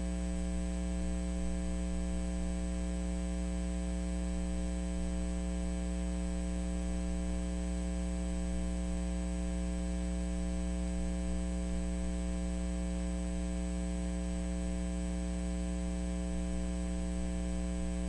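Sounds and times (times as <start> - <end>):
electrical mains hum: 0.0 - 18.0.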